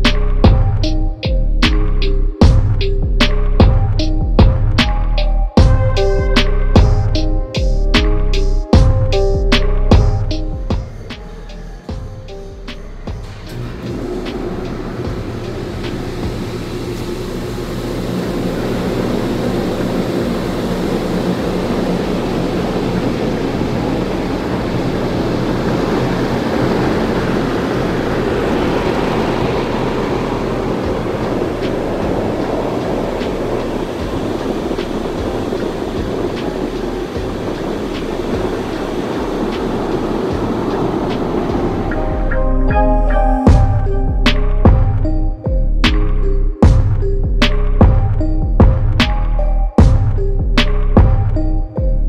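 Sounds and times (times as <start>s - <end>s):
water jets rushing rumble: 11.9s - 42.6s.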